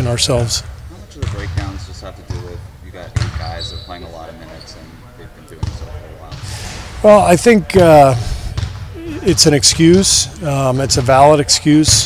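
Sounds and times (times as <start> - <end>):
basketballs bouncing on wooden floor: 0.4 - 3.7, 5.6 - 6.5, 7.7 - 12.0.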